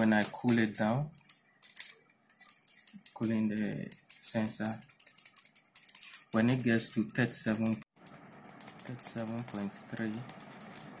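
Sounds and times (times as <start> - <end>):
sensor probe and cable clicking: 0.0 - 11.0.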